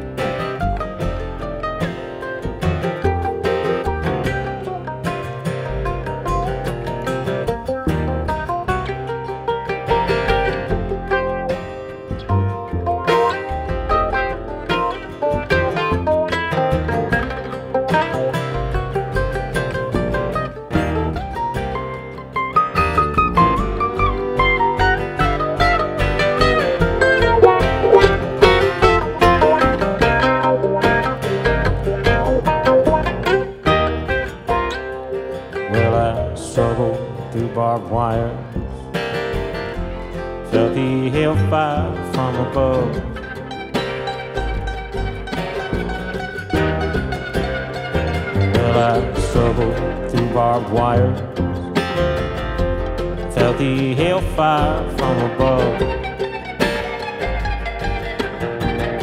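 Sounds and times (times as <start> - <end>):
acoustic guitars: 0.0 - 59.0
fiddle: 0.0 - 59.0
mandolin picking: 0.0 - 59.0
upright bass: 0.0 - 59.0.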